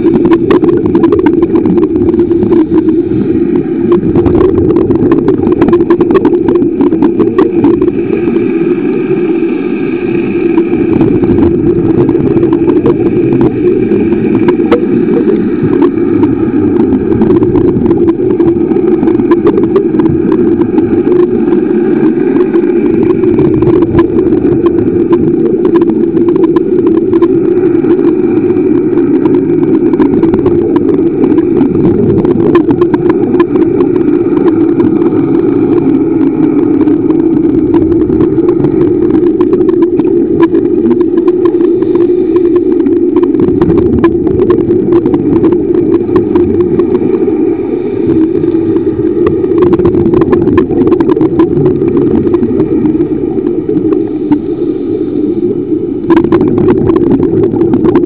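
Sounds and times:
crackle of small clicks: 0:00.0 - 0:09.2, 0:10.3 - 0:58.0
underwater motor hum: 0:00.0 - 0:58.0.

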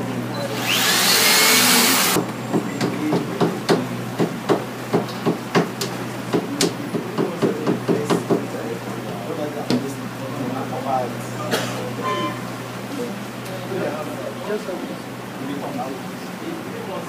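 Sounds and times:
power drill running: 0:00.5 - 0:02.2.

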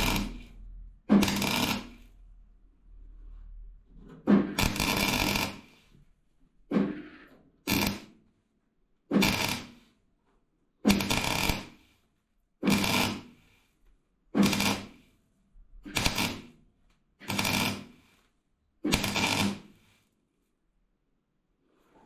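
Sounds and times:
welder welding steel: 0:00.0 - 0:02.1, 0:04.5 - 0:05.8, 0:07.7 - 0:08.1, 0:09.1 - 0:09.8, 0:10.9 - 0:11.8, 0:12.6 - 0:13.4, 0:14.4 - 0:15.1, 0:15.8 - 0:16.5, 0:17.2 - 0:18.2, 0:18.9 - 0:19.8.

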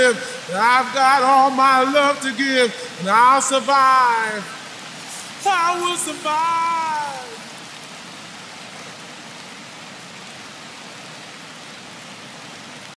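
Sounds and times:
lo-fi track with singing: 0:00.0 - 0:07.5
rain hiss: 0:00.0 - 0:13.0.

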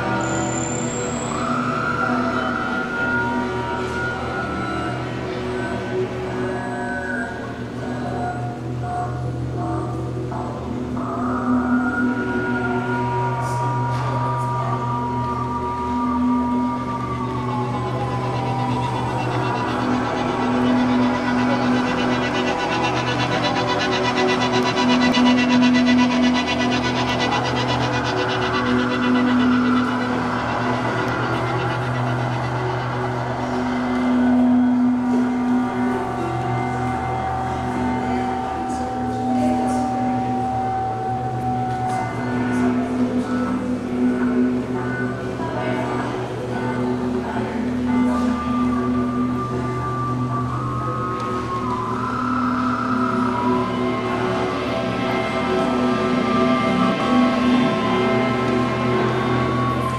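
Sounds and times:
electric guitar drone tones: 0:00.0 - 0:59.9
steady low drone: 0:00.0 - 0:59.9.

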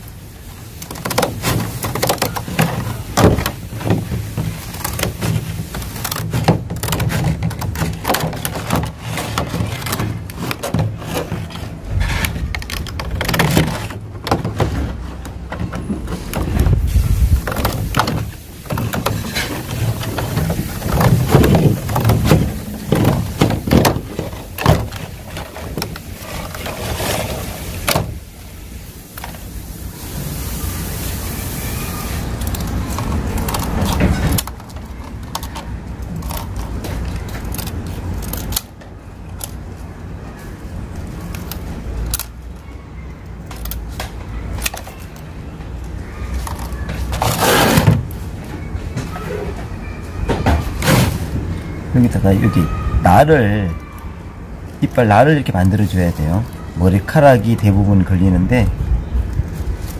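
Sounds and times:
plastic crackling: 0:00.0 - 0:49.6, 0:50.6 - 0:59.9
scissors snipping plastic: 0:32.4 - 0:39.6.

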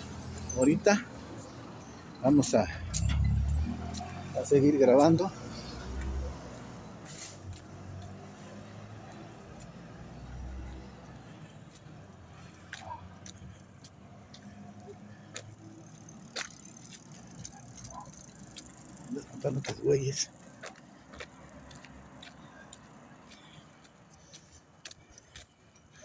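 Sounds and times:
distant traffic rumble: 0:00.0 - 0:26.0
sharp clicks and light rattles: 0:16.0 - 0:19.8.

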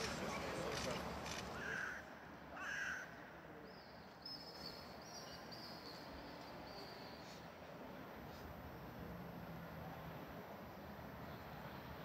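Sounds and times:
bird cawing: 0:01.6 - 0:03.2.

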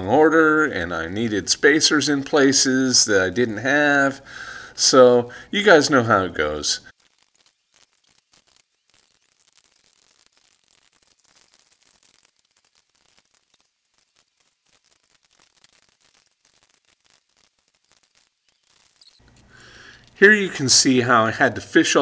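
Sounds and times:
faint hiss: 0:00.0 - 0:22.0
faint ticks: 0:06.9 - 0:20.2.

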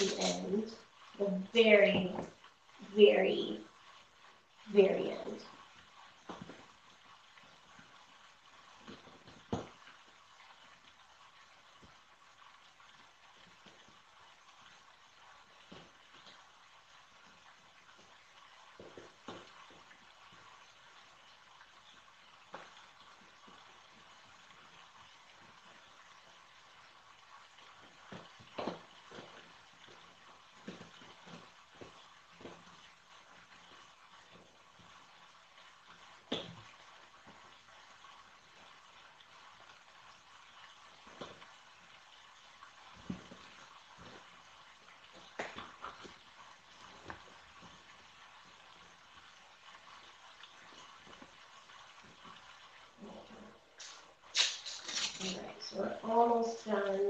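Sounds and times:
masking tape rustling and ripping: 0:00.0 - 0:00.6, 0:53.8 - 0:55.7
low hiss: 0:00.0 - 0:57.0.

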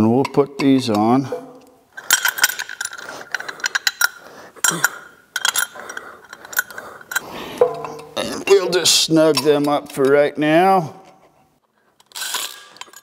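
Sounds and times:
metallic clicks of bolts threading: 0:00.2 - 0:08.2.

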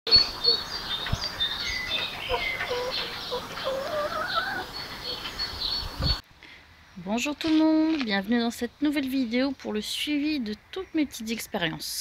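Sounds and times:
birds chirping and calling: 0:00.1 - 0:06.2.

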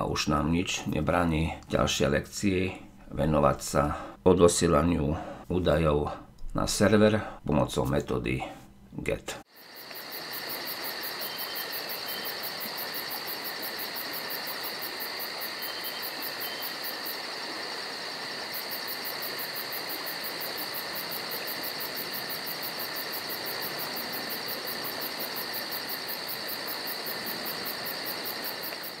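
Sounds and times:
crickets chirping: 0:09.5 - 0:29.0.

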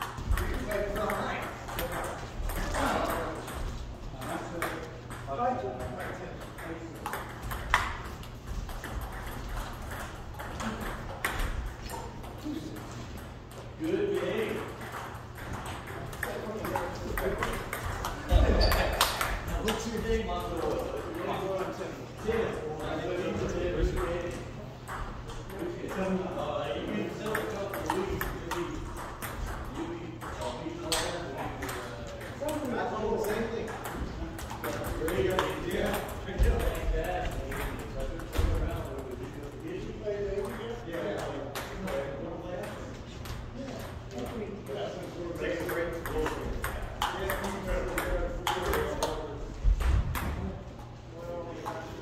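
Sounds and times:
ping-pong ball clicking: 0:05.9 - 0:19.8, 0:45.6 - 0:49.2.

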